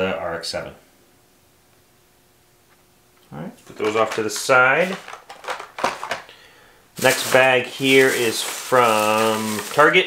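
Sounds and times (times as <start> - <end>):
plastic bag rustling: 3.6 - 6.3, 7.0 - 10.0
plastic packaging crinkling: 3.6 - 6.3, 7.0 - 10.0.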